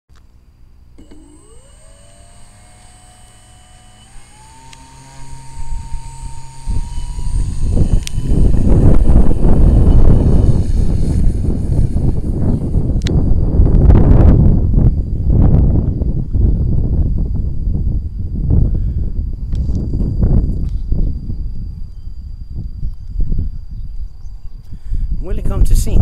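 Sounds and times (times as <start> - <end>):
electric motor whine: 1.0 - 16.0
rushing of air: 5.3 - 13.4.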